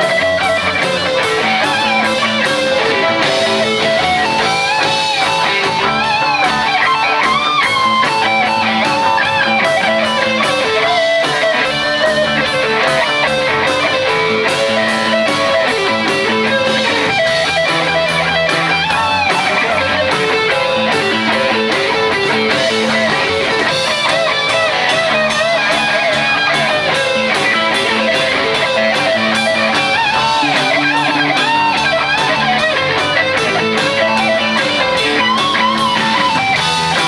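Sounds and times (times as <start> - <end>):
bass guitar: 0.0 - 37.0
drum kit beat: 0.0 - 37.0
electric guitars: 0.0 - 37.0
sliding lead melody: 0.0 - 37.0.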